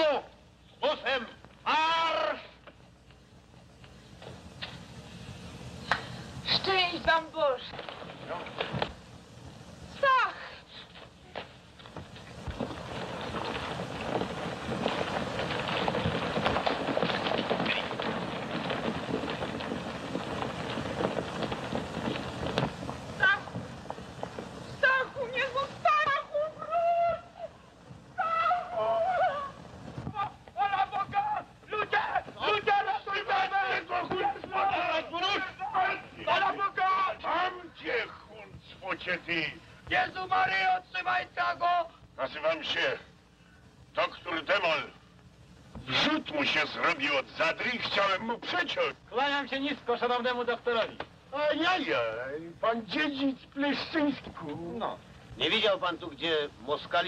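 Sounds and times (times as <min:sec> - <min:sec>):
horse hooves on dirt: 0:10.9 - 0:26.8.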